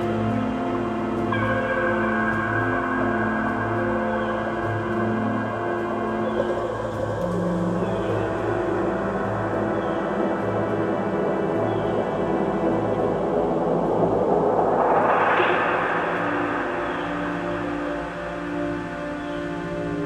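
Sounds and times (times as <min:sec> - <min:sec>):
hazy wash of sound: 0:00.0 - 0:20.0
sustained low notes: 0:05.9 - 0:20.0.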